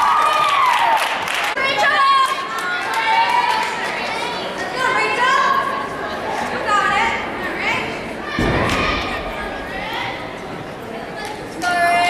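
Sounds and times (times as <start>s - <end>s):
spectators chattering in gym: 0.0s - 12.0s.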